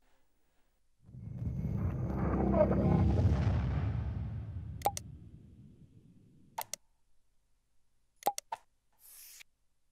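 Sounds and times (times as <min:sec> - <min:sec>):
low sound: 0:01.0 - 0:06.8
mouse clicks: 0:06.6 - 0:06.8, 0:08.2 - 0:09.5.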